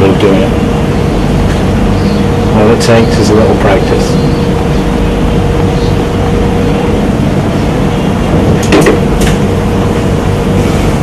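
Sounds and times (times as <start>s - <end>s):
loud hum and hiss: 0.0s - 11.0s.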